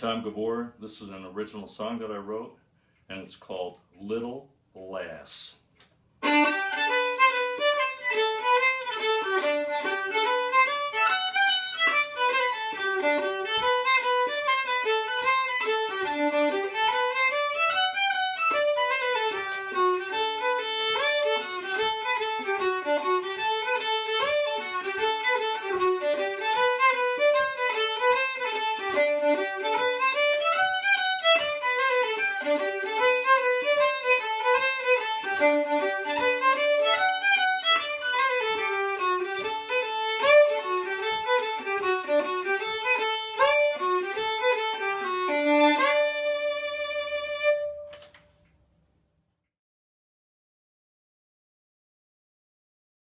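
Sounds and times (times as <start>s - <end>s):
solo fiddle playing: 6.2s - 47.9s.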